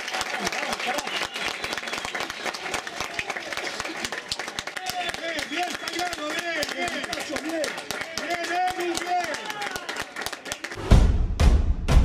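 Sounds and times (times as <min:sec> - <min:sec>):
hand clapping: 0:00.0 - 0:10.8.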